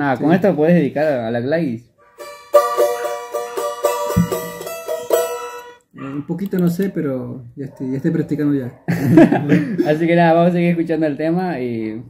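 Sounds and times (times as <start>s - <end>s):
charango strumming: 2.1s - 5.9s.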